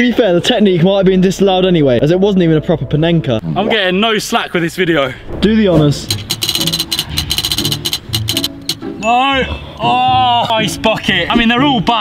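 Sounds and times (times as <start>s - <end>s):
background music: 0.0s - 12.0s
prize wheel ticking rapidly: 6.1s - 8.8s.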